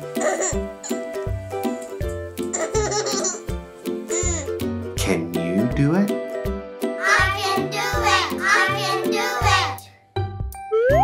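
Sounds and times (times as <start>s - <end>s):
children's music: 0.0s - 11.0s
baby laughing: 0.1s - 1.0s, 2.5s - 3.5s, 4.1s - 4.6s.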